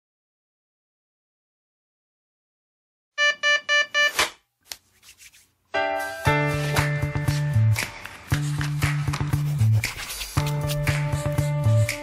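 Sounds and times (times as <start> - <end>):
alarm clock beeping: 3.2 - 4.2.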